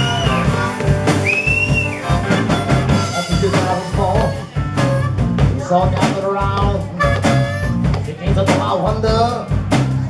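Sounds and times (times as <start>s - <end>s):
blues harmonica high note: 0.0s - 5.5s, 6.9s - 7.8s
rock band drums and guitar: 0.0s - 10.0s.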